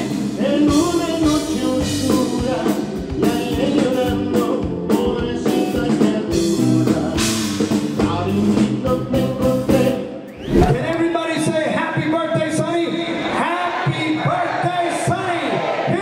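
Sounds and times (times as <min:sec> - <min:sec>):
man singing lead: 0:00.0 - 0:10.2
electric bass: 0:03.9 - 0:11.0.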